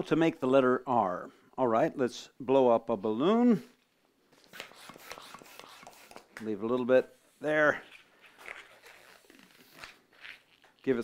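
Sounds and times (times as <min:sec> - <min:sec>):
balloon rubbing against palms: 0:04.4 - 0:11.0.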